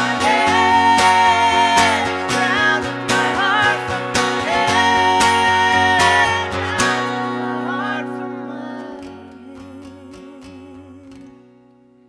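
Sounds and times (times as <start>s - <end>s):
person singing long notes: 0.0s - 11.3s
acoustic guitar strumming: 0.0s - 12.0s.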